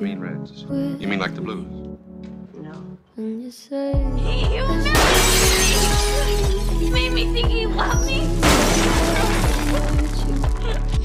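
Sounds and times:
glass smashing: 0:05.0 - 0:06.9, 0:08.4 - 0:10.4.

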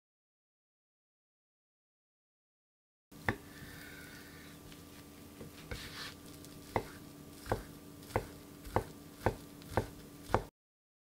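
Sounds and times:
knife chopping on cutting board: 0:05.4 - 0:10.5.

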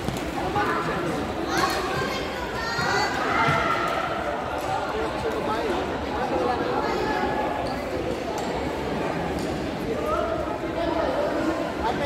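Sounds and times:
echoing indoor chatter: 0:00.0 - 0:12.0.

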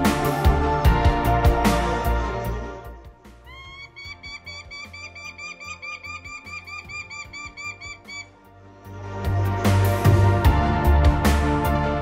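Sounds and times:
background music: 0:00.0 - 0:12.0
falcon calling sharp kek notes: 0:03.4 - 0:08.3.

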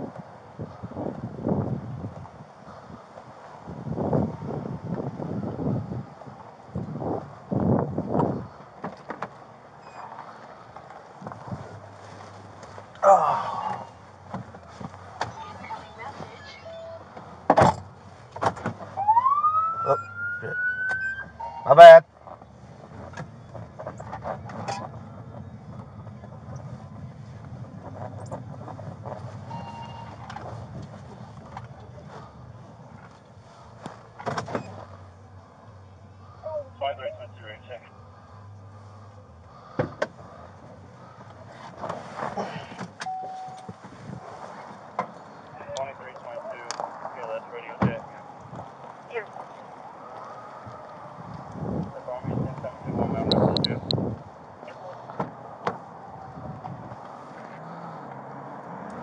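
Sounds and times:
car engine running low: 0:00.0 - 0:59.0
brief tone: 0:09.8 - 0:10.1, 0:15.6 - 0:17.0, 0:20.9 - 0:21.7, 0:29.5 - 0:30.3, 0:43.0 - 0:43.7.

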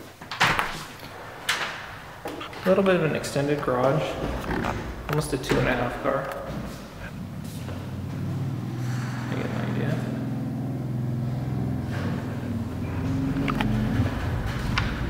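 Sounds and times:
low mechanical motor hum: 0:01.0 - 0:15.0.

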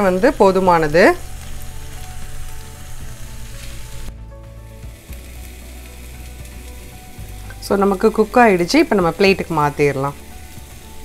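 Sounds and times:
meat sizzling on a grill pan: 0:00.0 - 0:11.0.

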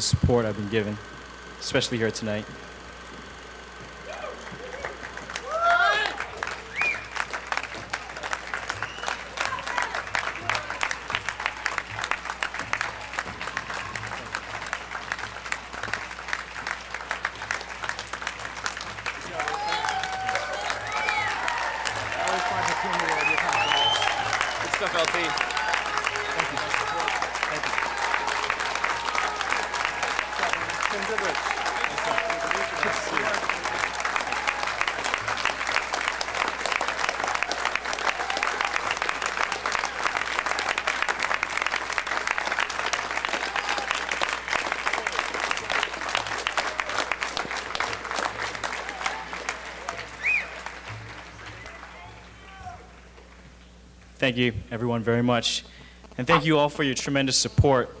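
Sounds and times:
audience applauding: 0:03.4 - 0:53.4
people calling out and whooping: 0:04.0 - 0:07.0, 0:19.3 - 0:34.8.

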